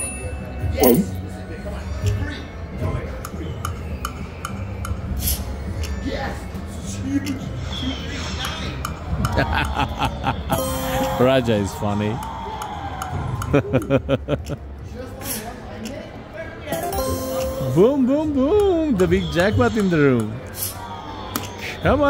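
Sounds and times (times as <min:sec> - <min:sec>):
clinking chiming game sounds: 0:00.0 - 0:01.3, 0:10.5 - 0:11.8, 0:16.7 - 0:18.3
slot machine music: 0:10.5 - 0:11.8, 0:16.7 - 0:18.5
slot machine reels spinning: 0:10.6 - 0:11.6, 0:16.7 - 0:18.1.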